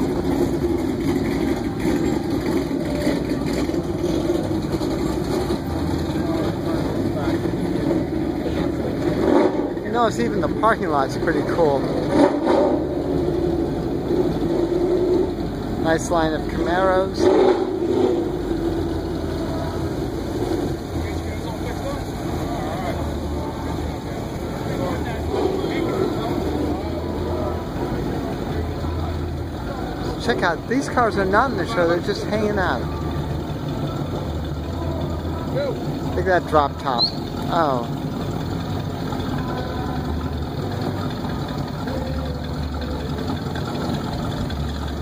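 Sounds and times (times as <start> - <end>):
car engine idling: 0.0 - 45.0.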